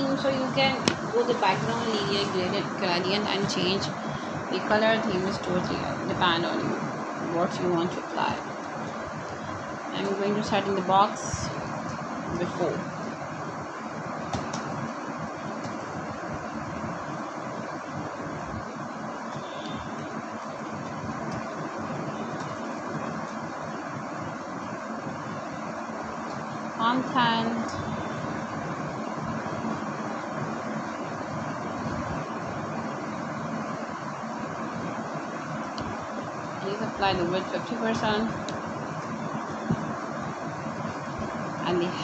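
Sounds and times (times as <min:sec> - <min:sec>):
steady background hiss: 0:00.0 - 0:42.0.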